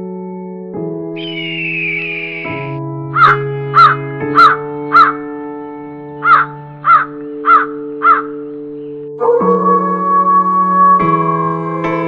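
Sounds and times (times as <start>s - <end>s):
soft keyboard chords music: 0.0s - 12.0s
crow cawing: 3.2s - 5.2s, 6.2s - 8.4s.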